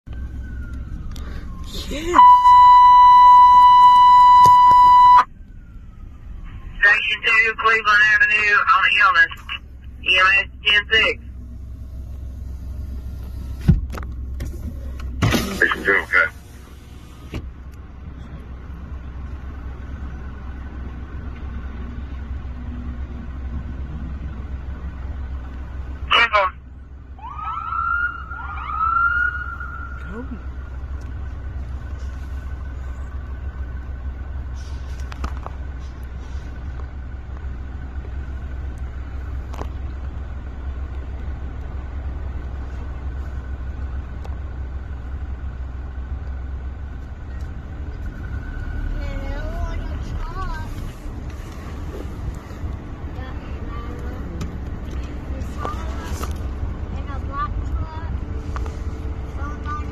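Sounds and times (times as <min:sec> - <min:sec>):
low traffic rumble: 0:00.0 - 0:59.9
wavering siren tone: 0:00.1 - 0:06.8, 0:27.2 - 0:30.2
police siren blasts and whoops: 0:00.2 - 0:05.3, 0:27.2 - 0:30.1.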